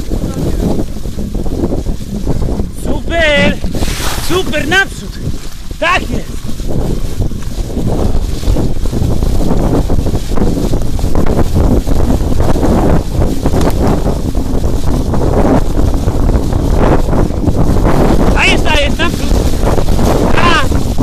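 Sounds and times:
wind buffeting microphone: 0:00.0 - 0:21.0.

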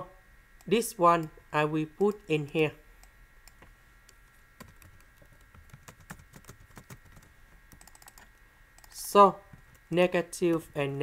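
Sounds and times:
keyboard and mouse clicking: 0:03.0 - 0:09.0.

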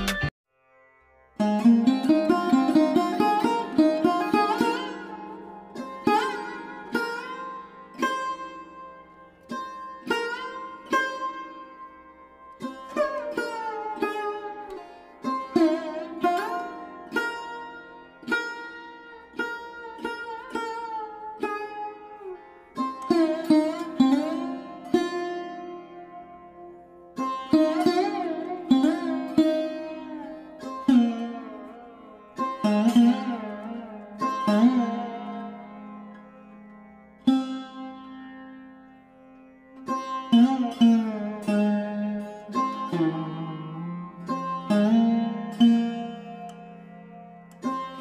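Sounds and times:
plucked string instrument bending notes: 0:01.3 - 0:48.0.

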